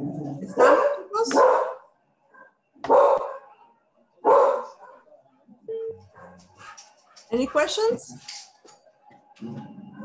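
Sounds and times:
dog barking: 0.4 - 5.2, 6.1 - 7.8.

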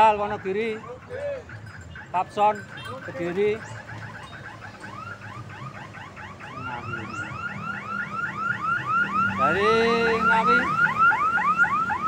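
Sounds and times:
electronic siren warbling: 0.0 - 12.0.

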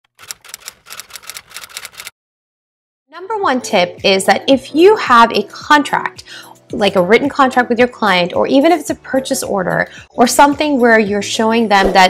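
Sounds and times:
rapid keyboard typing: 0.1 - 2.1.

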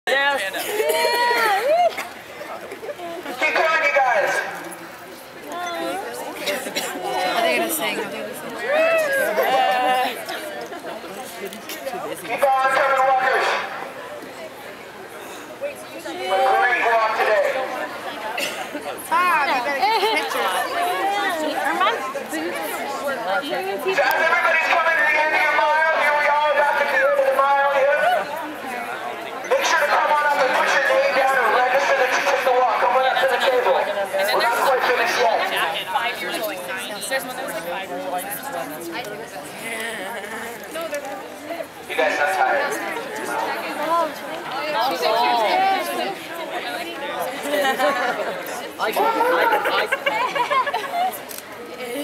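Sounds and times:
crowd chattering: 0.0 - 52.0
man's amplified voice: 3.4 - 4.6, 12.1 - 13.8, 16.2 - 17.8, 23.8 - 28.2, 29.5 - 36.2, 41.9 - 43.5, 48.8 - 49.9.

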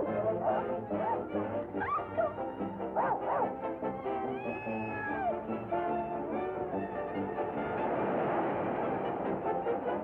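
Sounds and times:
cartoon orchestral music: 0.0 - 8.1.

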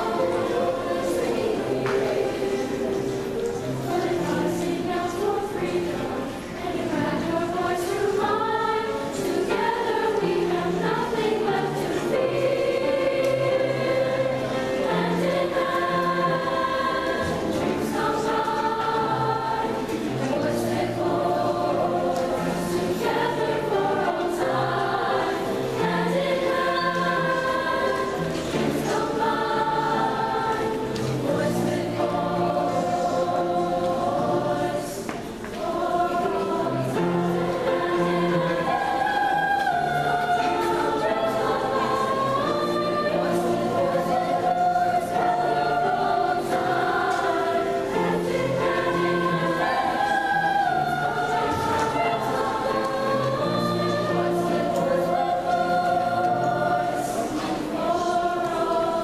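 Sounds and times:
girls' choir singing: 0.0 - 59.0
piano accompaniment: 0.0 - 59.0.

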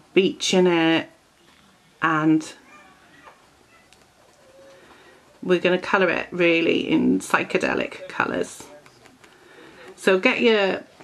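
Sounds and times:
bird calling: 2.6 - 5.5.

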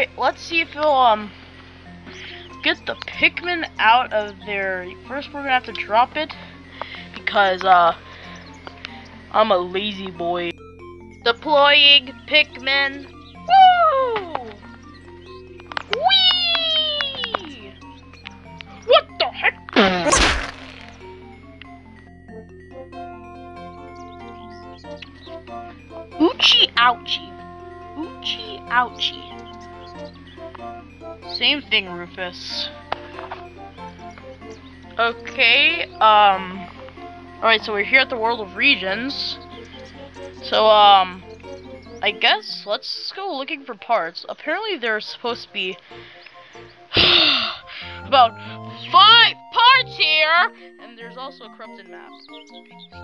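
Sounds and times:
background music with held notes: 0.0 - 53.0
sharp whack: 19.8 - 21.0
person gasping: 47.0 - 48.8.

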